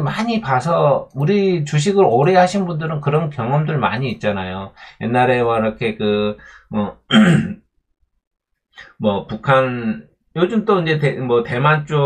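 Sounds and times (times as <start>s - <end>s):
faint breath: 6.4s - 6.7s.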